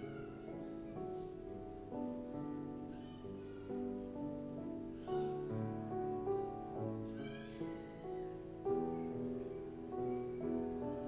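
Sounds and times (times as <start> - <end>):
slow piano music: 0.0 - 11.0.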